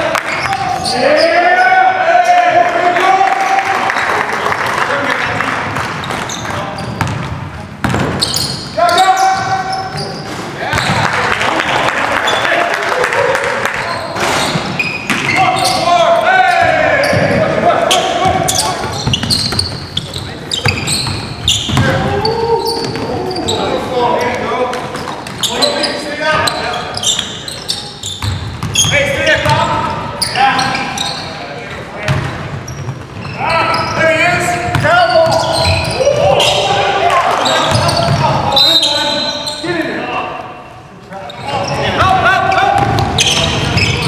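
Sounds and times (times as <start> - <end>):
players calling out: 0.0 - 44.0
basketball bouncing on hardwood floor: 7.0 - 8.3, 28.2 - 29.6.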